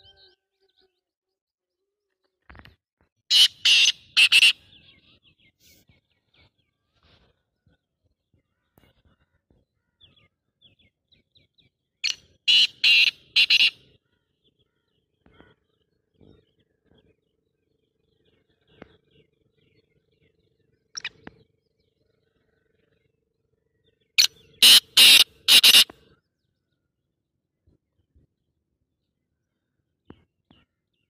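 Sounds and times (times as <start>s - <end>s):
bird calling shrilly: 3.3s - 5.0s, 12.0s - 13.9s, 24.2s - 25.9s.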